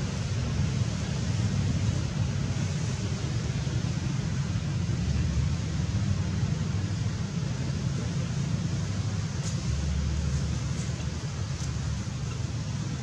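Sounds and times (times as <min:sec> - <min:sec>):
constant low rumble: 0:00.0 - 0:13.0
faint hiss: 0:00.0 - 0:13.0.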